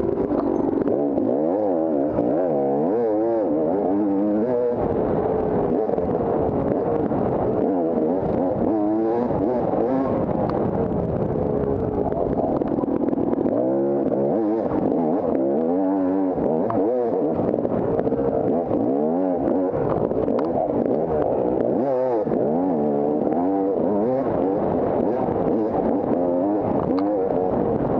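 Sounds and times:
dirt bike engine revving: 0:00.0 - 0:27.9.

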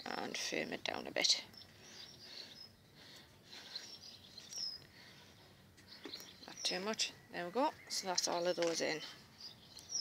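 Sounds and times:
distant birds chirping: 0:00.0 - 0:10.0.

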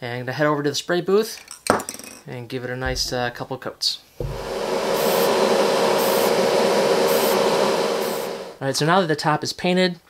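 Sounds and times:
exhaust fan running: 0:04.2 - 0:08.6.

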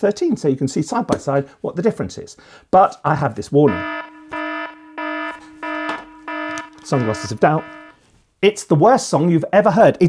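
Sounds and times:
buzzing alarm beeps: 0:03.7 - 0:08.0.

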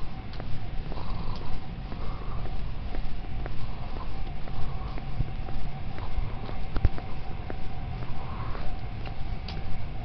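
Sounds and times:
faint steady whine: 0:00.0 - 0:10.0
wind rumble: 0:00.0 - 0:10.0.

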